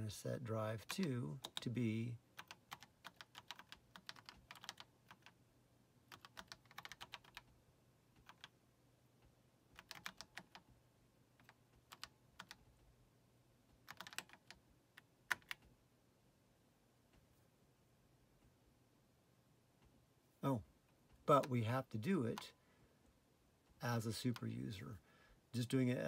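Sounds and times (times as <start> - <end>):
faint typing on computer keyboard: 0.8 - 5.4, 6.0 - 8.6, 9.2 - 12.9, 13.6 - 15.8, 20.8 - 22.6, 23.7 - 25.0.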